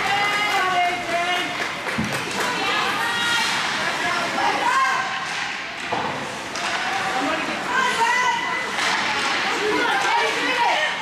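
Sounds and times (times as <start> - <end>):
voices calling out in ice rink: 0.0 - 11.0.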